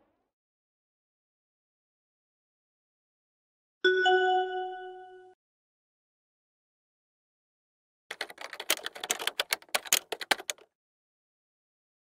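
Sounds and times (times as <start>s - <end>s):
keyboard key clacks: 8.1s - 10.6s.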